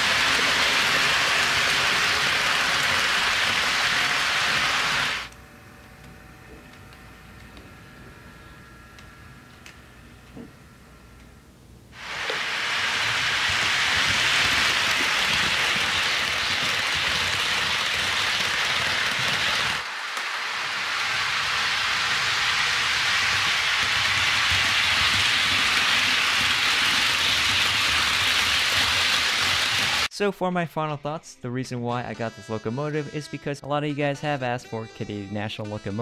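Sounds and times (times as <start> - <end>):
model train wheels rattling: 0.0 - 5.3, 12.0 - 30.1.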